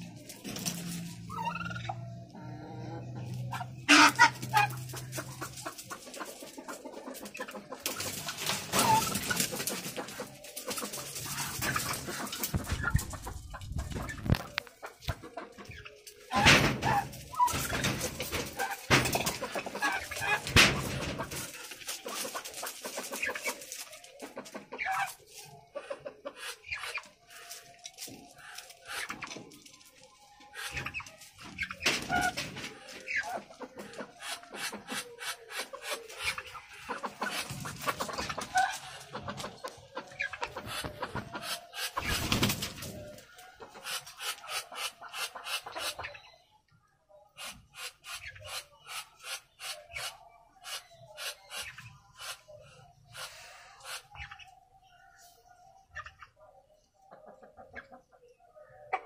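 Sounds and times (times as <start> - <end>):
turkeys and ducks clucking and calling: 0.0 - 59.0.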